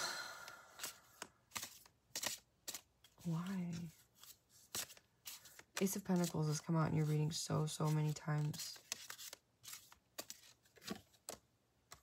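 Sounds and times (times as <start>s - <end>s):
cards being shuffled: 0.5s - 12.0s.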